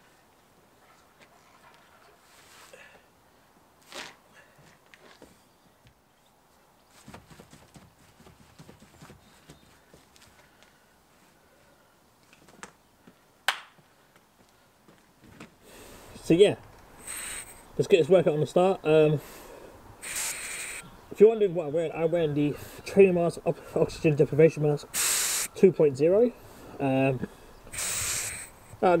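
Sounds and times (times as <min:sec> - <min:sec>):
rope knocking and scuffing: 0:03.8 - 0:06.0, 0:06.9 - 0:10.7, 0:12.2 - 0:15.6
footsteps: 0:06.9 - 0:10.8.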